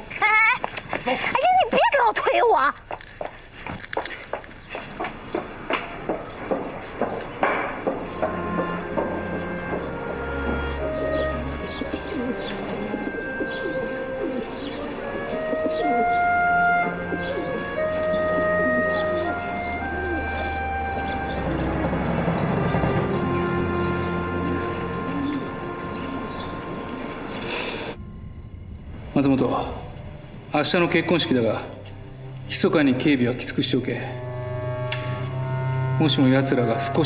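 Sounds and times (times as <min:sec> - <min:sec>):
birds chirping: 0:00.0 - 0:37.0
soft background music: 0:05.7 - 0:37.0
dove cooing: 0:06.1 - 0:28.0
faint pulsing high chirp: 0:25.3 - 0:32.4.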